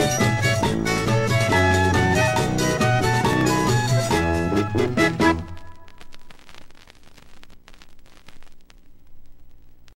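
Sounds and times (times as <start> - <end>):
vinyl record hiss: 0.0 - 10.0
vinyl crackles and clicks: 0.6 - 10.0.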